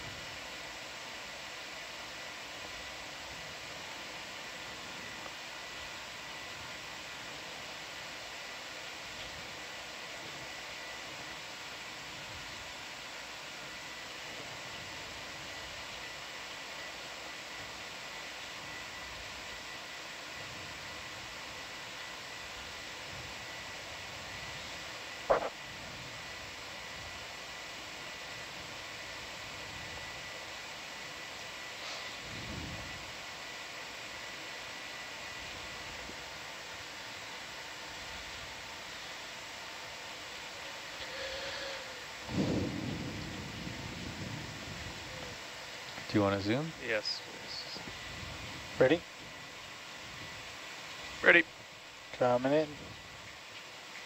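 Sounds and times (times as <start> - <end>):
steady background hiss: 0.0 - 54.0.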